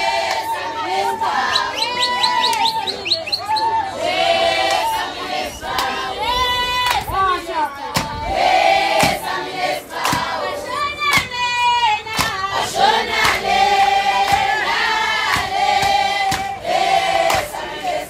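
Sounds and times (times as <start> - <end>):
women singing in chorus: 0.0 - 2.9, 3.8 - 18.0
sharp percussive beats: 12.1 - 12.6, 14.2 - 16.6.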